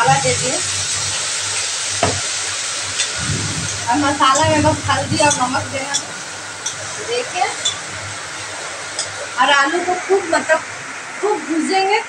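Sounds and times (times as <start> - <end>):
food sizzling in hot oil: 0.0 - 12.0
utensil knock: 2.0 - 2.3.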